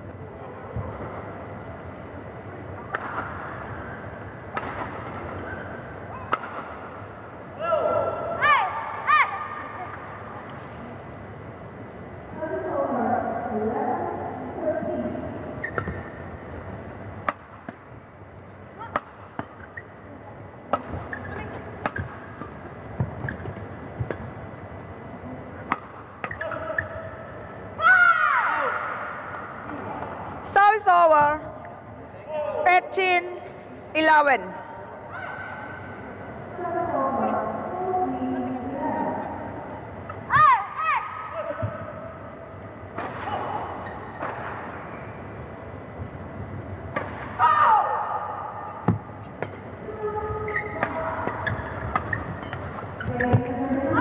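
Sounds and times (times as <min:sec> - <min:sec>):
racket hitting shuttlecock: 0:02.8 - 0:03.5, 0:04.5 - 0:05.6, 0:06.2 - 0:06.8, 0:17.2 - 0:17.8, 0:18.8 - 0:19.6, 0:25.6 - 0:26.9, 0:46.9 - 0:47.4, 0:50.8 - 0:53.3
players shouting: 0:27.8 - 0:29.2.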